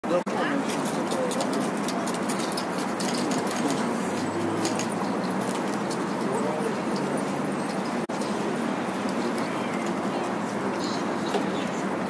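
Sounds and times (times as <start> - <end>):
city noise: 0.0 - 12.0
hubbub of passers-by voices: 0.0 - 12.0.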